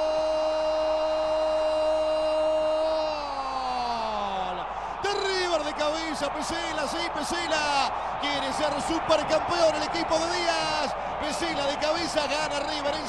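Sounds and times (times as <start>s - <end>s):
excited fast commentary: 3.1s - 13.0s.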